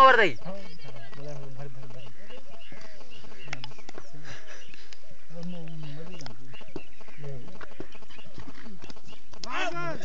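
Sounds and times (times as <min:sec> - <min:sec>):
men calling and shouting: 0:00.0 - 0:10.0.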